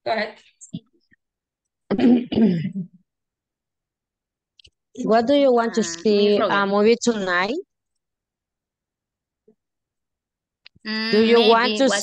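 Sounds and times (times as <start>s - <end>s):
person clearing throat: 1.9s - 3.0s.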